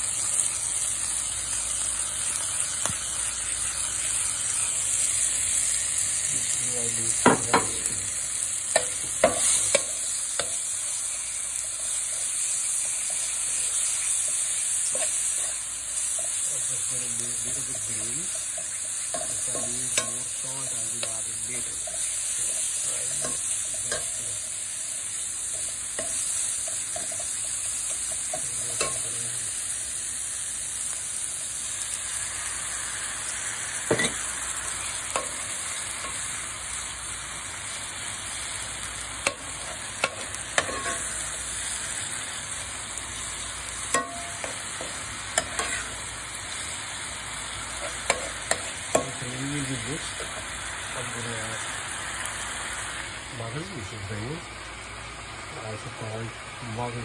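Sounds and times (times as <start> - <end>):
masala sizzling in oil: 0.0 - 57.0
metal spoon knocking pan: 7.2 - 7.8, 43.9 - 44.6.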